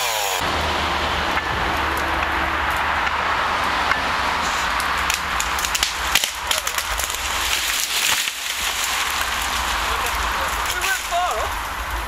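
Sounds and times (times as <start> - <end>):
chainsaw engine running: 0.0 - 0.6
tree branches cracking and snapping: 1.7 - 12.0.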